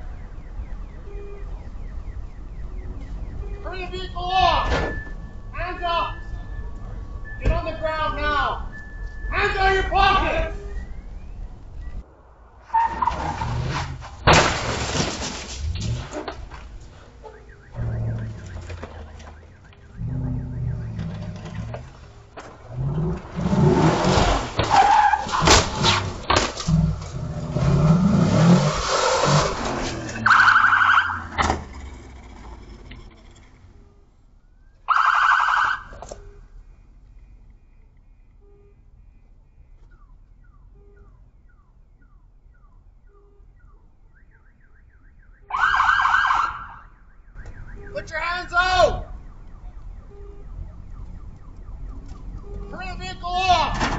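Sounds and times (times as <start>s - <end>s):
short siren blasts: 0.0s - 12.0s, 16.9s - 31.4s, 33.7s - 36.8s, 37.6s - 53.9s
crash bangs and scraping: 12.6s - 32.6s
engine revving: 17.6s - 24.7s, 25.3s - 33.8s.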